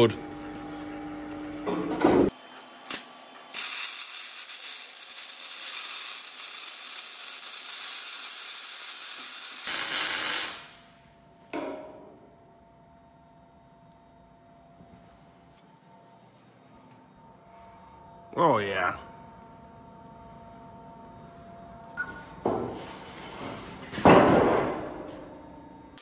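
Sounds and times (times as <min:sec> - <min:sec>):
welding arc crackling hiss: 0:02.8 - 0:10.8.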